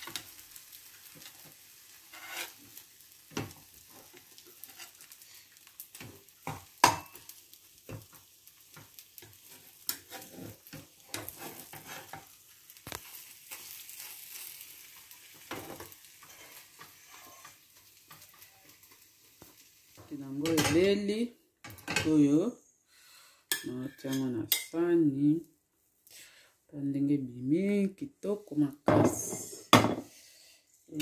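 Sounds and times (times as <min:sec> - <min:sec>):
omelette sizzling in a frying pan: 0:00.0 - 0:22.2
metal spatula scraping a pan: 0:01.1 - 0:07.3, 0:08.7 - 0:19.0.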